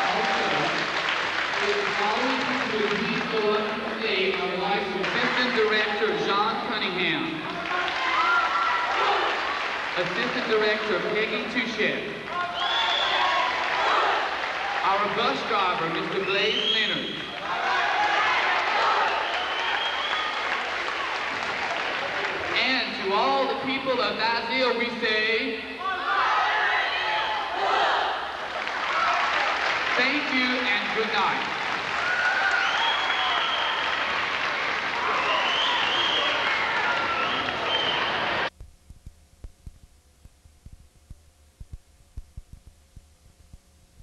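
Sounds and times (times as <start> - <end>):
audience applauding: 0.0 - 6.0, 7.4 - 11.5, 12.2 - 22.6, 28.4 - 38.5
voices in crowd: 12.3 - 15.1.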